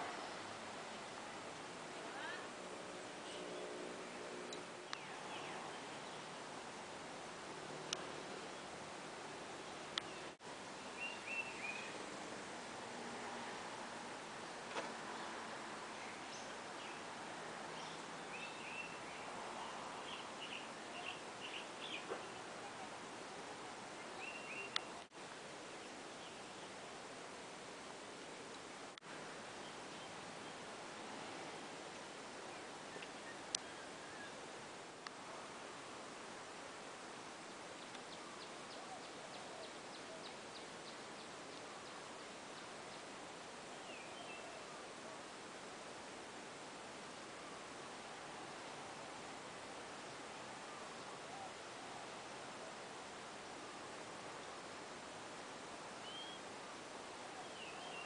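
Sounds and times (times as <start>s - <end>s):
steady background hiss: 0.0s - 58.0s
small birds chirping: 3.2s - 6.9s, 9.6s - 12.2s, 14.4s - 27.0s, 37.4s - 44.8s, 56.0s - 56.5s, 57.2s - 58.0s
faint click: 7.9s - 8.1s, 9.9s - 10.1s, 24.7s - 25.1s, 33.0s - 33.7s, 35.0s - 35.2s, 37.8s - 38.2s.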